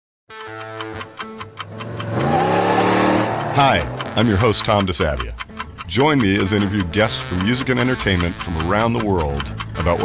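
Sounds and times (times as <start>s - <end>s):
clock-like ticking: 0.3s - 10.0s
sustained music tones: 0.3s - 10.0s
rising swell: 1.6s - 4.3s.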